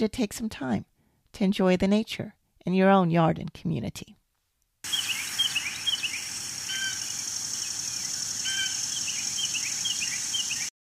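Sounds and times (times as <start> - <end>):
steady high-pitched hiss: 4.8 - 10.7
birds chirping: 4.9 - 10.7
lower fuller bird calls: 4.9 - 10.7.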